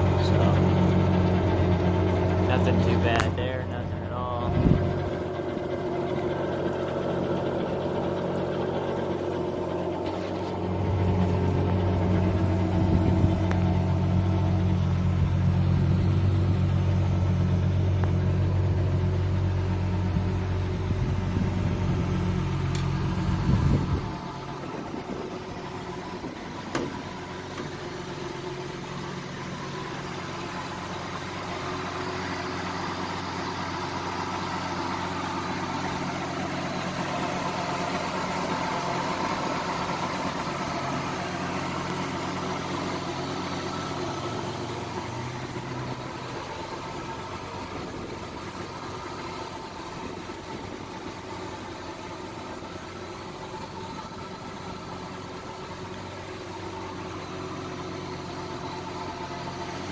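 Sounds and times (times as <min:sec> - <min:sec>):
boat engine idling: 0:00.0 - 0:59.9.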